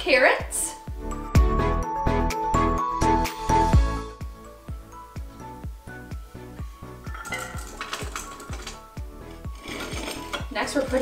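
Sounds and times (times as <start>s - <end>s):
background music with steady beat: 0.0s - 11.0s
carrots clattering into metal pot: 7.1s - 11.0s.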